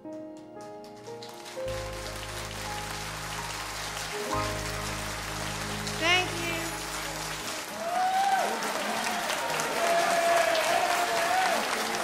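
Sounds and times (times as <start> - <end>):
piano notes: 0.0 - 8.3
audience applause: 0.8 - 12.0
band holding low notes: 1.7 - 7.7.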